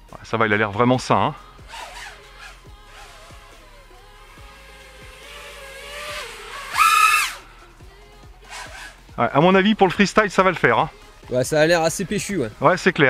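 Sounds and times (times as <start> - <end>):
quadcopter motors whining: 1.5 - 7.5, 8.4 - 9.1.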